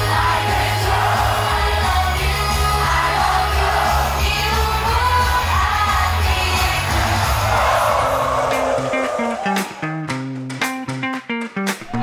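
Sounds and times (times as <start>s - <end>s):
crowd cheering loudly: 0.0s - 10.1s
live pop song over pa: 0.0s - 11.0s.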